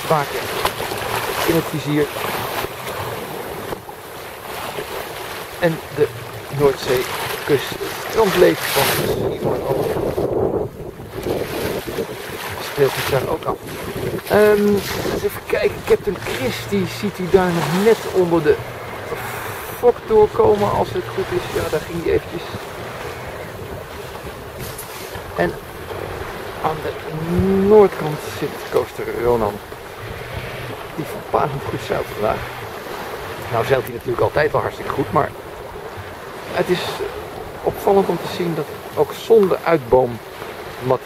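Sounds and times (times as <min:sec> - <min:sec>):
water slapping boat hull: 0:00.0 - 0:41.0
wind on microphone: 0:05.8 - 0:27.9, 0:28.5 - 0:34.0.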